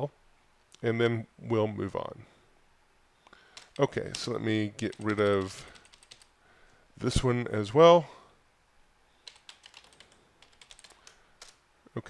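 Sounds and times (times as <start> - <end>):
typing on computer keyboard: 3.5 - 6.3, 9.2 - 11.6.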